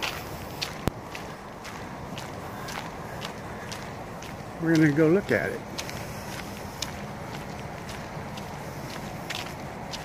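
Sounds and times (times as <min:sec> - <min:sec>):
footsteps on dirt trail: 0:00.0 - 0:10.0.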